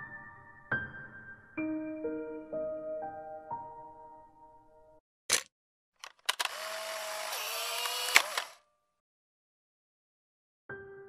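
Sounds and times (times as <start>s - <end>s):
camera clicking: 5.3s - 8.6s
camera motor whirring: 6.2s - 8.6s.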